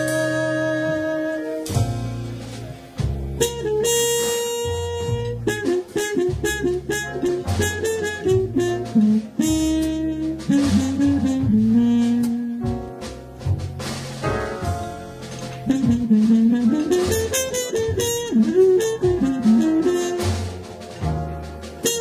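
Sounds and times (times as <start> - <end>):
drum kit: 0.0 - 22.0
piano: 0.0 - 22.0
trumpet and saxophone melody: 0.0 - 22.0
upright bass: 0.0 - 22.0.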